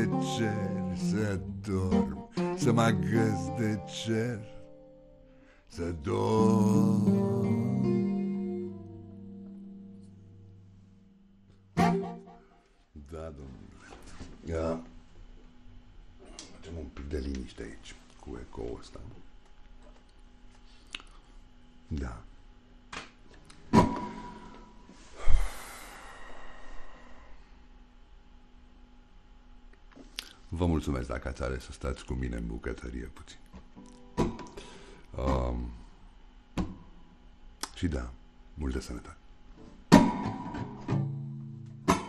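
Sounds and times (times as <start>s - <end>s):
person singing: 0.0s - 4.7s, 5.7s - 9.0s
acoustic guitar chord ringing: 0.0s - 12.6s
man breathing into microphone: 25.0s - 27.6s, 34.6s - 35.1s.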